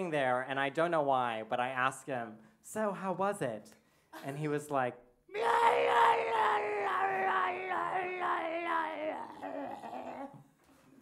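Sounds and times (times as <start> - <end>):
man wailing into a microphone: 5.3 - 10.4.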